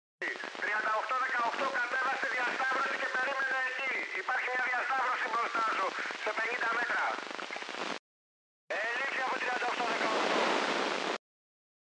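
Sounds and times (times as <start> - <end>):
faint garbled radio voice: 0.2 - 7.7, 8.7 - 10.3
radio hiss and static: 0.2 - 8.0, 8.7 - 11.2.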